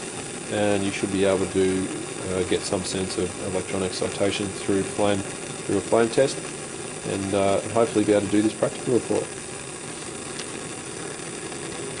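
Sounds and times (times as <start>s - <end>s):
gas burner flame hissing: 0.0s - 12.0s.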